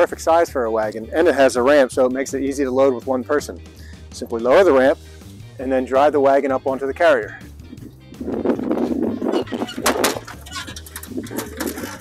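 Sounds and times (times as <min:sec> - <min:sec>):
background music with bass: 0:00.0 - 0:12.0
electric motor and tires rumbling: 0:07.7 - 0:12.0.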